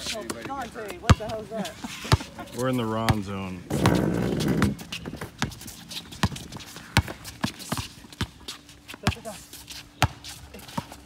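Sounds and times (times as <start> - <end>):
basketball bouncing on hard court: 1.0 - 1.4, 6.2 - 8.4.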